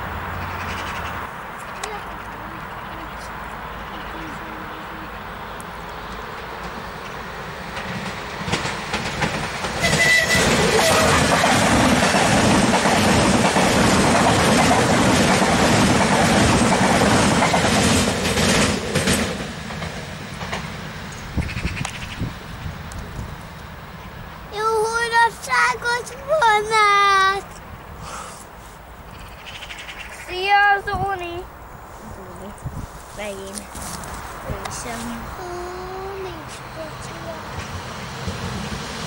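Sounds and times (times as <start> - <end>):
train rumble: 0.0 - 39.0
wheels clicking over rail joints: 4.9 - 23.8.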